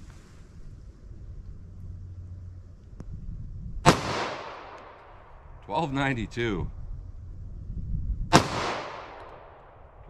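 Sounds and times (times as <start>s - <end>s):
pistol shot: 3.8s - 5.1s, 8.3s - 10.0s.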